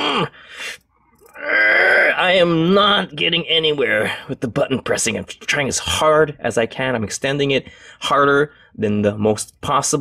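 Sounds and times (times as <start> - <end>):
man breathing: 0.2 - 1.4, 7.6 - 8.8
man groaning with effort: 1.3 - 2.2.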